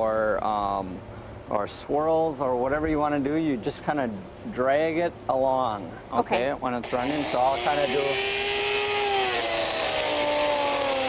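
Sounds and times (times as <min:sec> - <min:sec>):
die grinder whining: 0:06.8 - 0:11.0.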